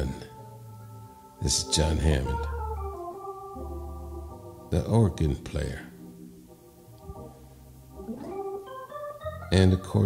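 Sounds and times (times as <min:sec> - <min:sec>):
organ playing soft chords: 0:00.0 - 0:10.0.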